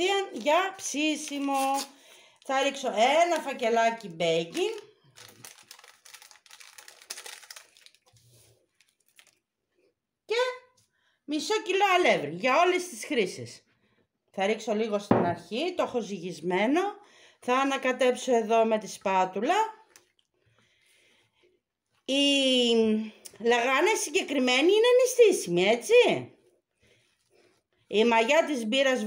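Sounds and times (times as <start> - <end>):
paper sachet crinkling: 0.1 - 9.5.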